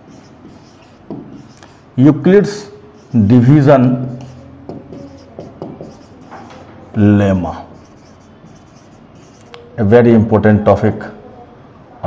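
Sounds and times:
marker scratching on whiteboard: 0:00.0 - 0:09.7.

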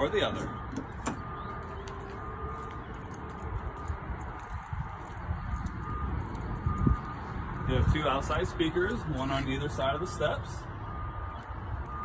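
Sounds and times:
footsteps on pavement: 0:00.7 - 0:08.0
wind rumble on microphone: 0:00.8 - 0:09.2.

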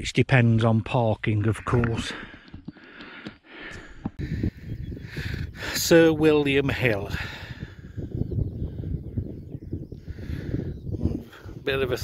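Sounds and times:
wind rumbling on microphone: 0:03.8 - 0:12.0.

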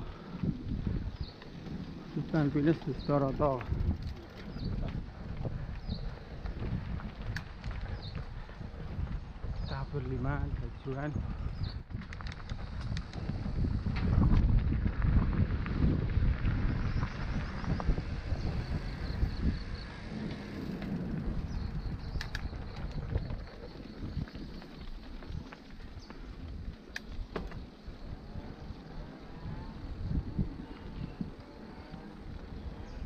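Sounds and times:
birds or insects chirping: 0:00.0 - 0:13.4, 0:16.6 - 0:33.0
bike rattling over bumps: 0:00.0 - 0:33.0
wind rumble on microphone: 0:00.0 - 0:33.0.

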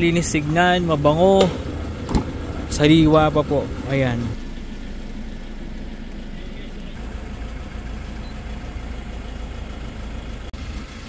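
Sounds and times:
car engine idling inside cabin: 0:00.0 - 0:11.0.

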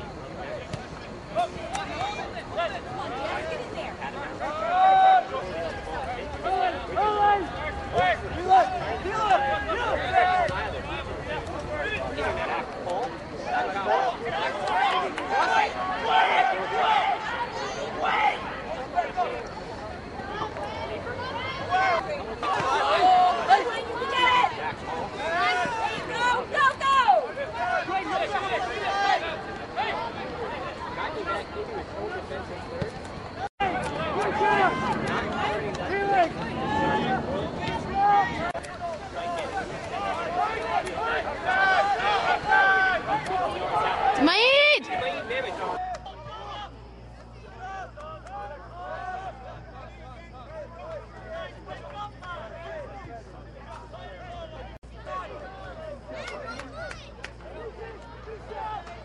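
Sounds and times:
voices shouting: 0:01.3 - 0:59.0
men shouting calls: 0:33.6 - 0:46.7.

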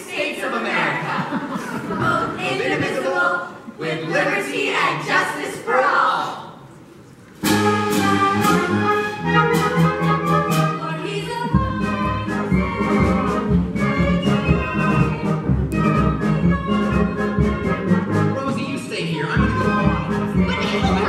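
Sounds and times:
pit orchestra with brass: 0:07.4 - 0:11.0, 0:11.7 - 0:18.6.

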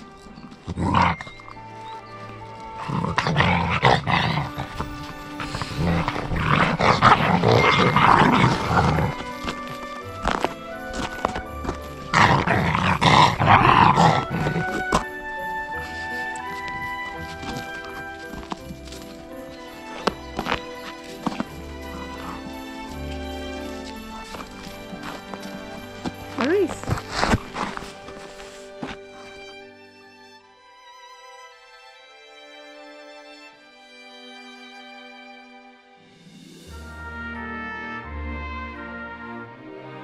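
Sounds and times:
background music: 0:00.0 - 0:40.0.

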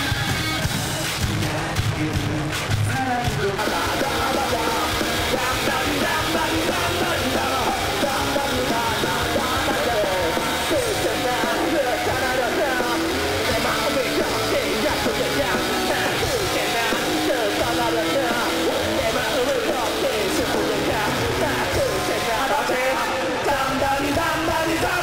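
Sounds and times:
live rock band: 0:00.0 - 0:25.0
man singing and shouting: 0:00.0 - 0:25.0.

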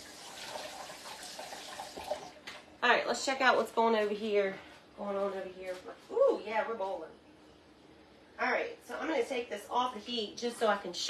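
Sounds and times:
faucet running water: 0:00.0 - 0:02.3
faint splash of rinsing: 0:00.0 - 0:02.4.

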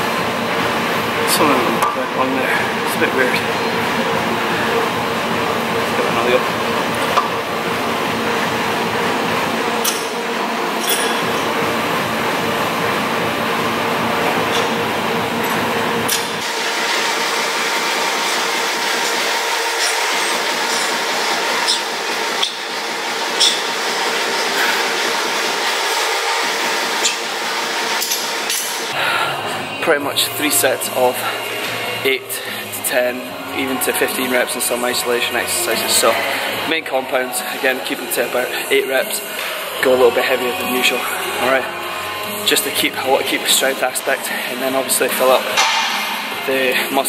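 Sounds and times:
faint music: 0:00.0 - 0:47.0
steady hum: 0:00.0 - 0:47.0.

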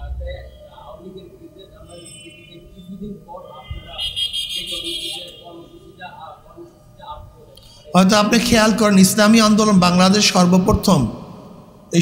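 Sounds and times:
shrill high-pitched buzzing: 0:00.0 - 0:06.3
faint voices: 0:00.0 - 0:08.2.

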